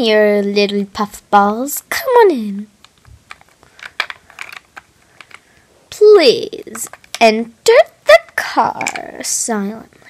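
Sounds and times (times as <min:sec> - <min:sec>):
plastic figurines clicking and tapping: 0:02.8 - 0:05.6, 0:06.6 - 0:09.4.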